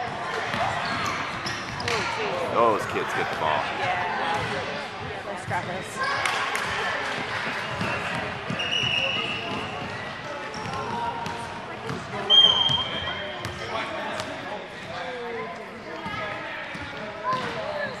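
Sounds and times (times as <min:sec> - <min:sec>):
voices of children and spectators: 0:00.0 - 0:18.0.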